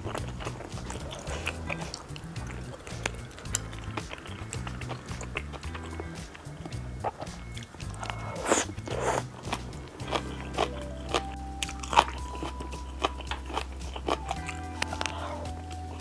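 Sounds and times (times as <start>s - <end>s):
chewing noodles: 0.0s - 16.0s
slurping: 0.0s - 16.0s
soft background music: 0.0s - 16.0s
wet mouth clicks: 0.0s - 16.0s.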